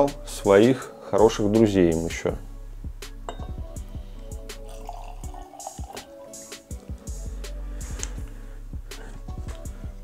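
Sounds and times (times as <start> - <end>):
background music with steady beat: 0.0 - 10.0
whisky pouring into a glass: 4.6 - 6.5.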